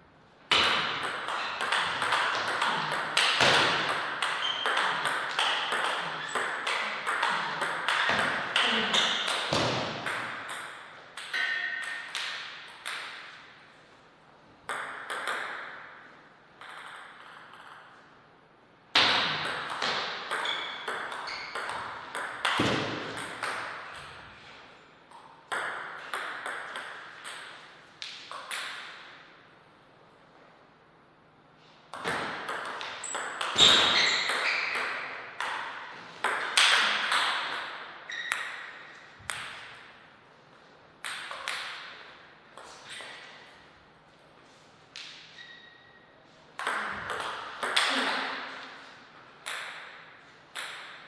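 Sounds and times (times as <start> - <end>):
table tennis ball clicking off bats: 0.5 - 13.3, 16.6 - 17.9, 41.0 - 42.0, 46.6 - 48.1, 49.4 - 51.0
table tennis ball bouncing on table: 0.5 - 13.4, 14.7 - 16.0, 16.6 - 18.0, 18.9 - 24.3, 25.1 - 29.1, 31.9 - 40.0, 41.0 - 42.0, 46.6 - 48.6, 49.4 - 51.0.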